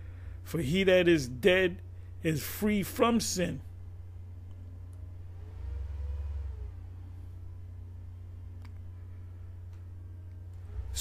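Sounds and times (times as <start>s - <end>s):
low steady hum: 0.0s - 11.0s
faint rising and falling tone: 3.8s - 11.0s.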